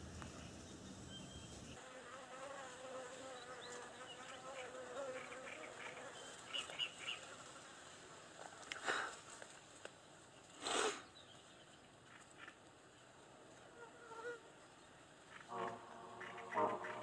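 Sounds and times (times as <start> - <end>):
flying insect buzzing: 1.7 - 7.6.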